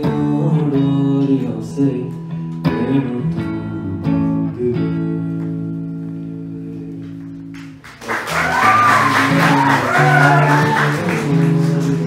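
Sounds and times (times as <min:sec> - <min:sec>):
person singing: 0:00.0 - 0:07.4, 0:08.5 - 0:12.0.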